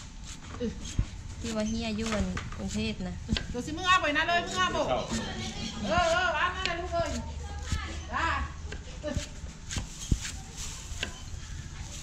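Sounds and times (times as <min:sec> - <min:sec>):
cleaver chopping on wooden block: 0:02.0 - 0:03.6, 0:05.1 - 0:07.9, 0:08.7 - 0:10.3.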